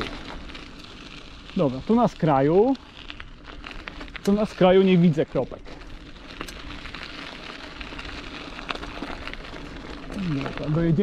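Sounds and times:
tyres crunching on gravel: 0.0 - 11.0.

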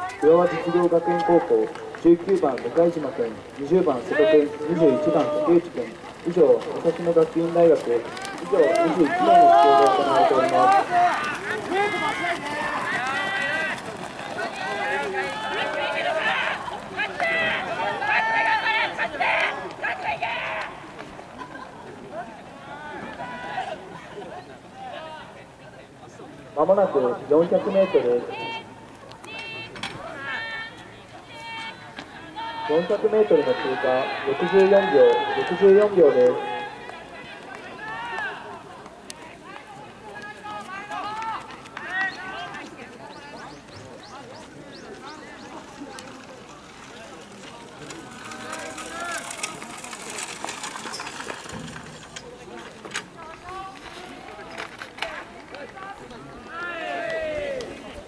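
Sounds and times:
people shouting cheers: 4.0 - 5.7, 8.1 - 20.9, 29.3 - 38.7, 56.4 - 57.8
people calling out loudly: 4.0 - 6.3, 8.0 - 20.9.

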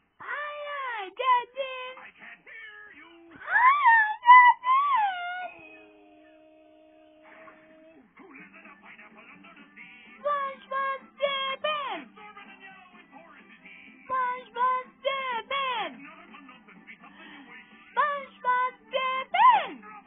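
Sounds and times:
children's song through tv speaker: 0.0 - 20.0.

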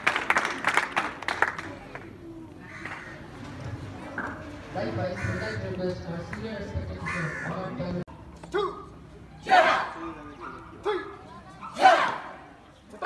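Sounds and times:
crowd chatter: 0.0 - 13.0
group shouting together: 9.4 - 10.0, 11.7 - 12.4
single shouted call: 10.8 - 12.4.

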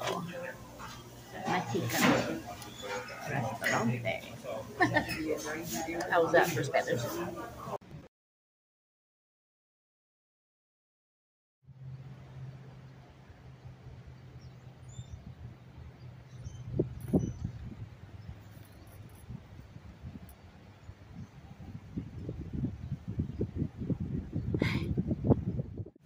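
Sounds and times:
wind buffeting microphone: 14.4 - 26.0.

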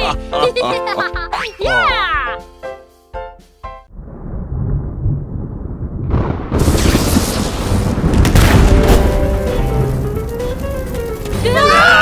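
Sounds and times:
cartoon thunder rumble: 3.9 - 11.6.

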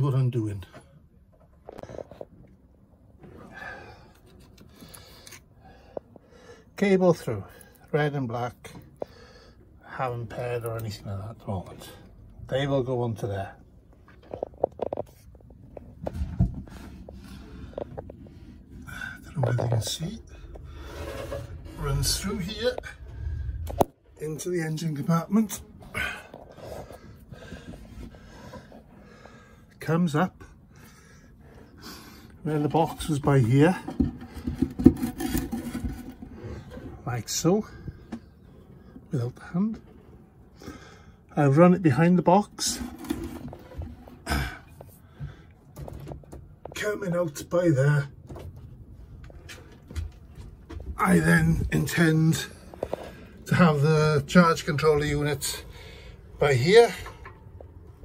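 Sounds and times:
handling rustles and scrapes: 4.1 - 6.2, 13.9 - 29.0, 31.8 - 40.4, 41.9 - 46.9.

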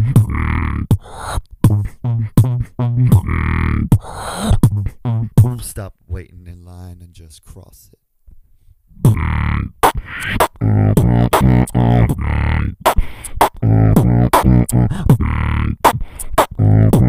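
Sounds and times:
beatboxing into microphone: 0.0 - 6.3, 9.0 - 17.0.

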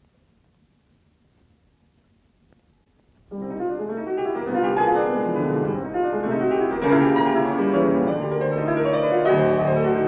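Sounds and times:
solo classical piano: 3.1 - 10.0.

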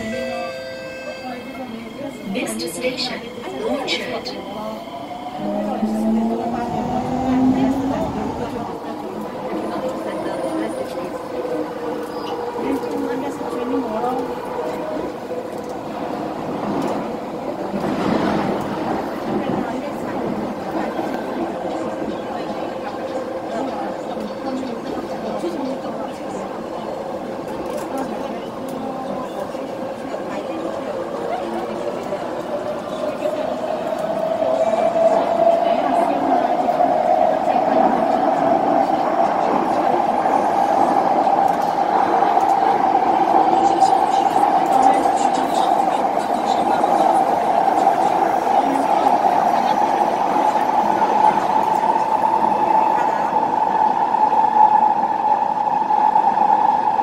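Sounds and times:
train rumble: 0.0 - 57.0.

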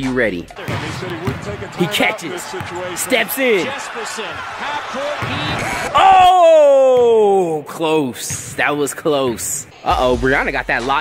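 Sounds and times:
crowd shouting: 0.8 - 7.2.

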